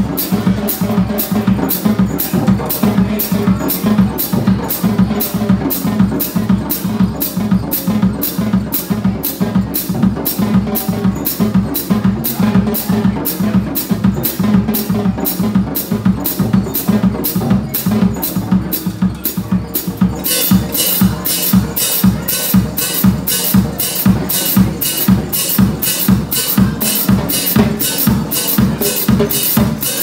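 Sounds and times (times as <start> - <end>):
snare tom and bass drum: 0.0 - 30.0
cymbal strokes: 15.3 - 30.0.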